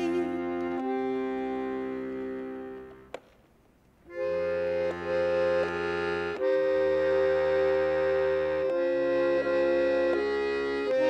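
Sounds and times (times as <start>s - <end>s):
accordion chords: 0.0s - 3.2s, 4.0s - 11.0s.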